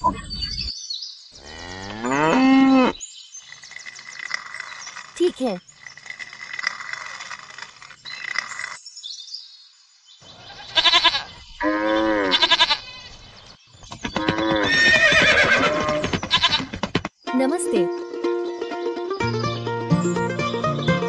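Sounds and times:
farm animal calls: 10.2 - 13.2
sheep bleating: 10.5 - 11.3, 12.0 - 13.1.

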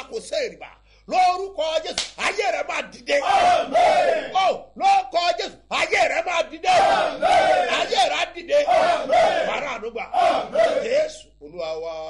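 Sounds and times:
man shouting: 1.1 - 11.0.

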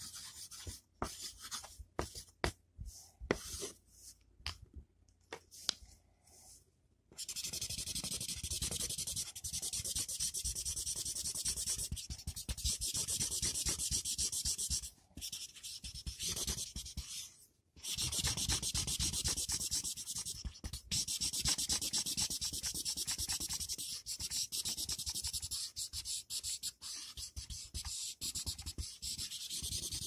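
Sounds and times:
marker scratching on paper: 0.0 - 2.3, 3.3 - 3.8, 7.2 - 30.0.

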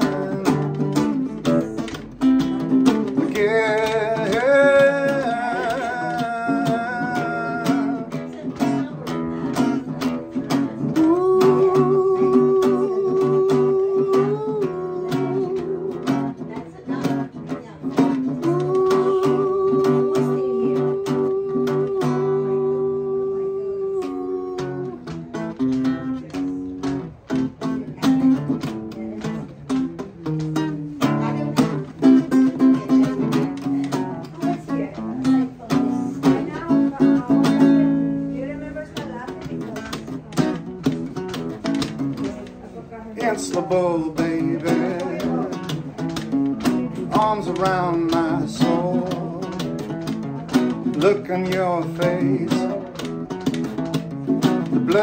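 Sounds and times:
man singing: 0.0 - 27.1, 27.7 - 38.2, 43.0 - 55.0
acoustic guitar strumming chords: 0.0 - 55.0.

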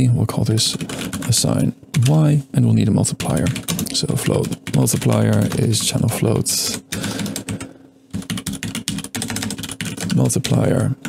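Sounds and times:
computer keyboard typing: 0.7 - 2.2, 3.2 - 11.0.

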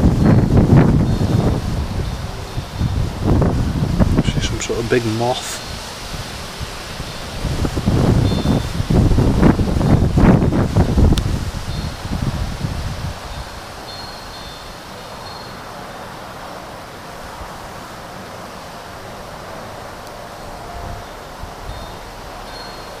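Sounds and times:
steady outdoor hiss: 0.0 - 23.0
wind buffeting microphone: 0.0 - 23.0
faint high ringing tones: 13.3 - 16.1, 20.2 - 23.0.

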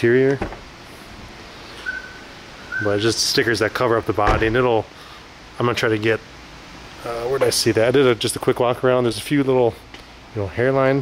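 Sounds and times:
man talking: 0.0 - 0.4, 2.8 - 5.0, 5.6 - 6.3, 7.0 - 11.0
faint high-pitched chirp: 1.8 - 3.0.

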